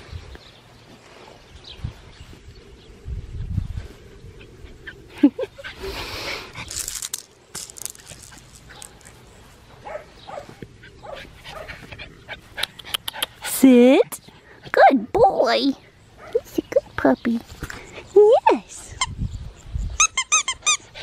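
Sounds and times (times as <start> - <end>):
rustling in grass: 5.8 - 12.6.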